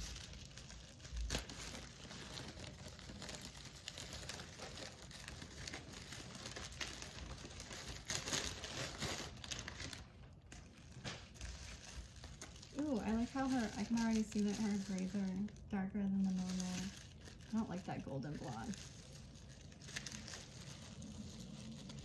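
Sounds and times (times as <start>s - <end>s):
bubble wrap crinkling: 0.0s - 22.0s.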